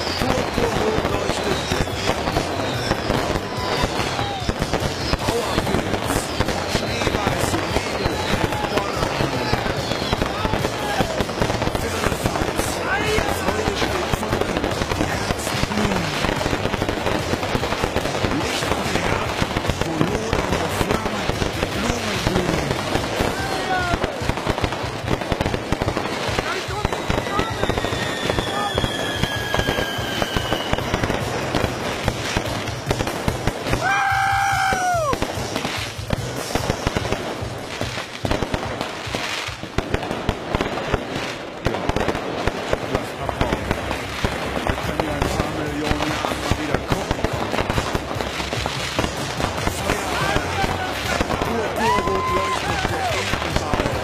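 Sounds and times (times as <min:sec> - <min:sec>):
fireworks whistles gliding down: 0:00.0 - 0:39.9, 0:41.9 - 0:54.0
fireworks bangs and crackling: 0:00.0 - 0:54.0.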